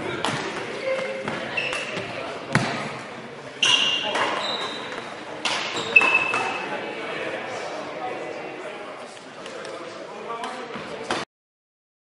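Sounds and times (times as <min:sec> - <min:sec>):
rackets hitting shuttlecock: 0:00.1 - 0:02.9, 0:03.6 - 0:06.6.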